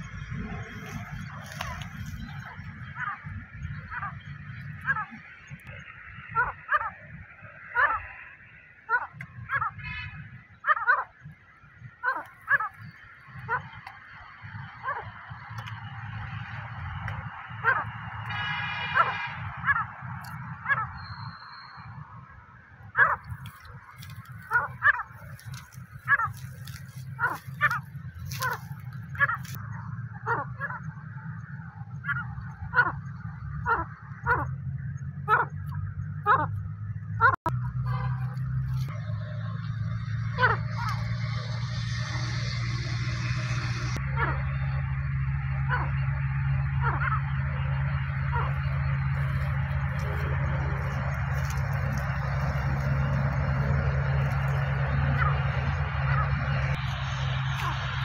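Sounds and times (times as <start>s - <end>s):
partridge calling: 0.6s - 7.0s, 8.9s - 14.0s, 19.0s - 22.0s, 22.9s - 31.1s, 32.0s - 37.4s, 48.1s - 57.8s
low steady hum: 9.1s - 58.0s.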